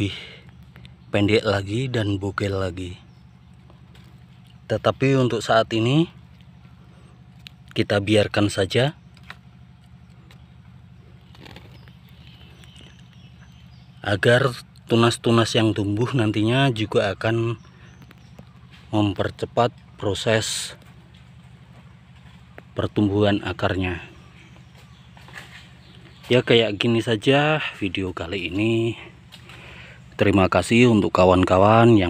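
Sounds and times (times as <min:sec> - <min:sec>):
steady low hum: 0:00.0 - 0:32.0
faint clicks: 0:17.7 - 0:18.9.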